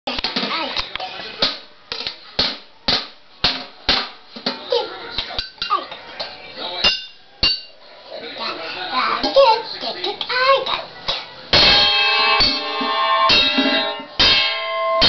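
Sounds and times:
stick beating metal pot and tubs: 0:00.1 - 0:05.8, 0:06.8 - 0:07.8, 0:11.1 - 0:15.0
metallic ringing: 0:11.5 - 0:15.0.

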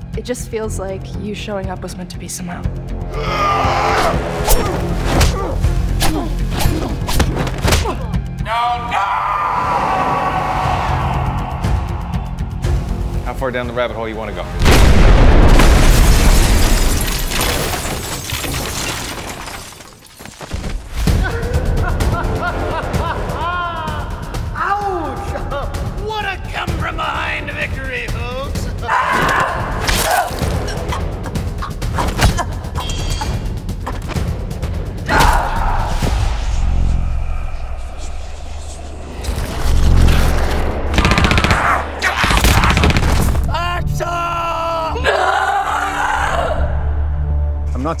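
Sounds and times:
explosion debris and shattering: 0:14.6 - 0:21.2
rapid automatic gunfire: 0:40.9 - 0:43.4.

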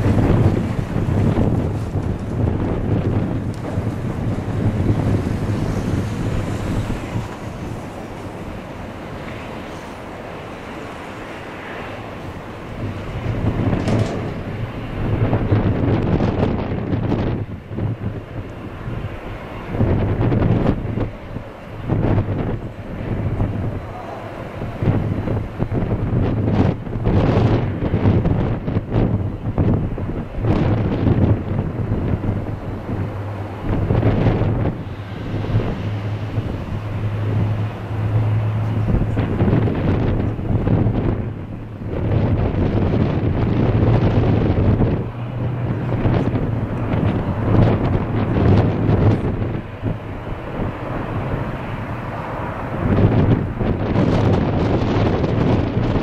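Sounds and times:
turboprop aircraft hum: 0:00.0 - 0:56.0
wind gusting on microphone: 0:00.0 - 0:56.0.

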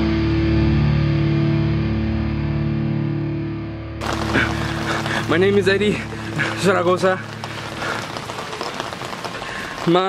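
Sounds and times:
background hiss: 0:04.0 - 0:10.0.

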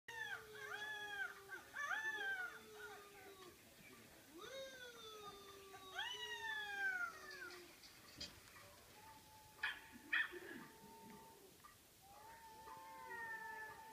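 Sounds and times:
dogs howling: 0:00.1 - 0:03.6, 0:04.4 - 0:07.8, 0:08.6 - 0:13.9.

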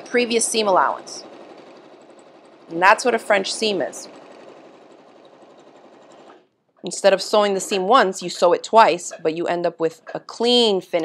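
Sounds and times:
sewing machine stitching: 0:00.0 - 0:08.5.

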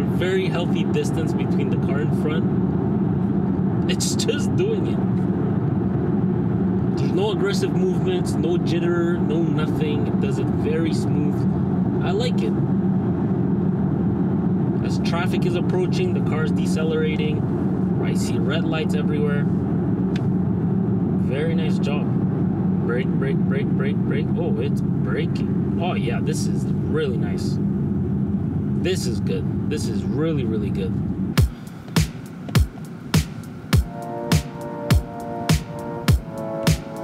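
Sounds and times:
road and tyre noise in car cabin: 0:00.0 - 0:37.0
deep kick drum: 0:31.4 - 0:36.9
electronic music with beat: 0:31.4 - 0:37.0.

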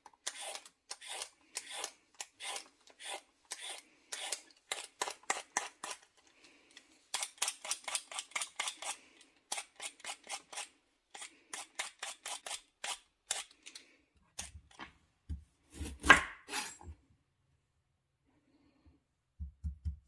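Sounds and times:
peeler scraping vegetable skin: 0:00.0 - 0:14.6, 0:15.7 - 0:16.9.

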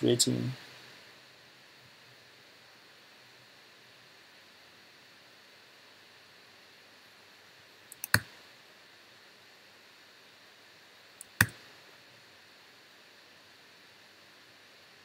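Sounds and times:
faint room hiss: 0:00.0 - 0:15.0
computer mouse clicks: 0:07.9 - 0:08.3, 0:11.2 - 0:11.6.

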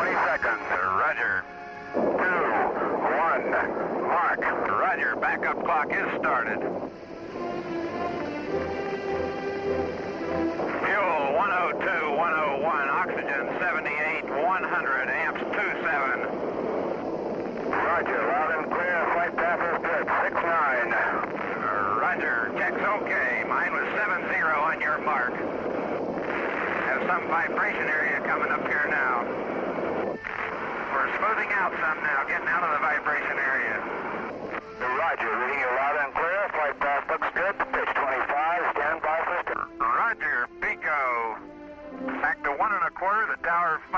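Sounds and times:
radio-like voices: 0:00.0 - 0:08.3, 0:10.6 - 0:43.9
music: 0:00.0 - 0:43.9.

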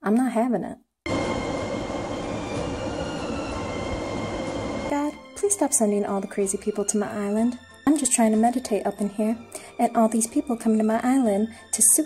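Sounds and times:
thin high whines: 0:01.1 - 0:05.7
rumbling rushing noise: 0:01.1 - 0:05.8.

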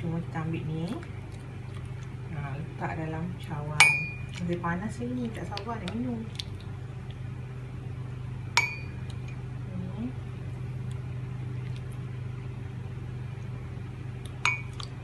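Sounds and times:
steady low hum: 0:00.0 - 0:15.0
spoon clinking against glass bowl: 0:03.8 - 0:04.3, 0:08.6 - 0:09.0, 0:14.5 - 0:14.8.

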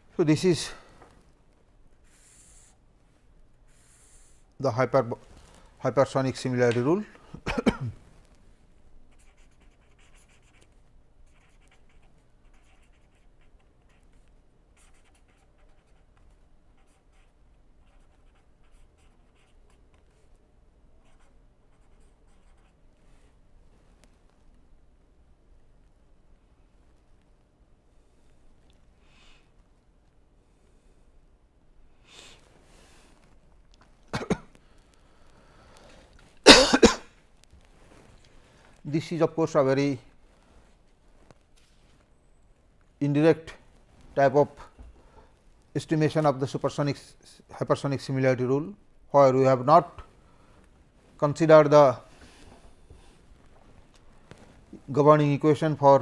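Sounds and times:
man coughing: 0:07.4 - 0:08.0, 0:34.1 - 0:34.5, 0:36.4 - 0:37.1
pen scratching on paper: 0:09.1 - 0:14.2, 0:14.8 - 0:19.8, 0:21.0 - 0:22.8.

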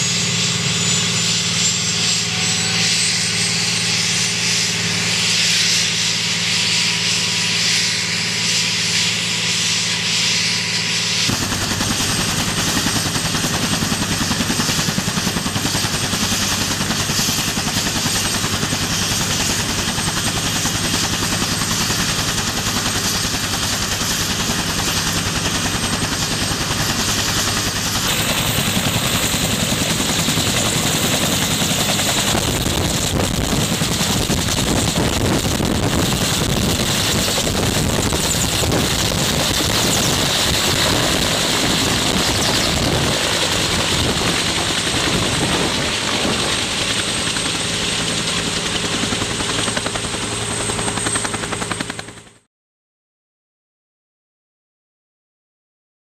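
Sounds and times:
helicopter rotor chop: 0:00.0 - 0:52.5
helicopter turbine whine: 0:00.0 - 0:52.5.

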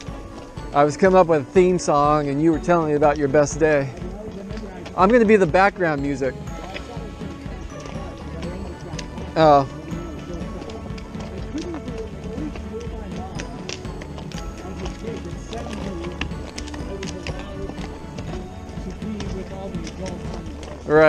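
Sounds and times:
hooves clip-clopping on dirt: 0:00.0 - 0:21.0.

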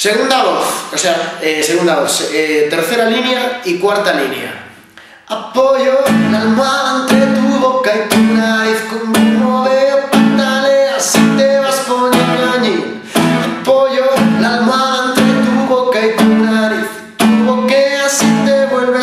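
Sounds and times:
man singing: 0:05.2 - 0:19.0
classical guitar strummed: 0:05.6 - 0:19.0.

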